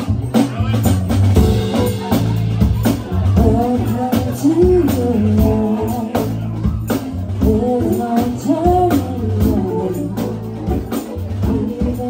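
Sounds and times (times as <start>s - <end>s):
live funk band playing: 0.0s - 12.0s
woman singing lead: 1.7s - 12.0s.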